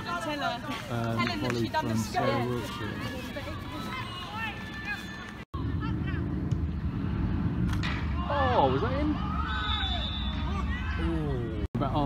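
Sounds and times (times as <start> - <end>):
steady low rumble: 5.5 - 8.6.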